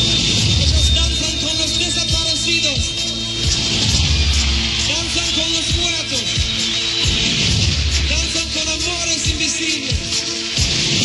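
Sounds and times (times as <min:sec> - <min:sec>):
crowd noise: 0:00.0 - 0:10.6.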